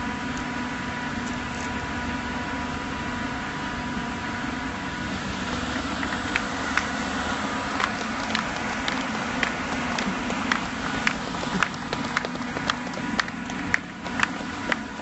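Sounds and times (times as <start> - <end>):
construction machinery drone: 0.0 - 15.0
faint steady whine: 0.0 - 15.0.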